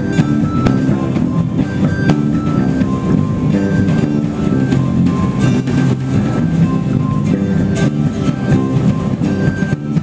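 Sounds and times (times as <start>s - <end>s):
drum kit: 0.0s - 10.0s
electric bass: 0.0s - 10.0s
strummed acoustic guitars: 0.0s - 10.0s.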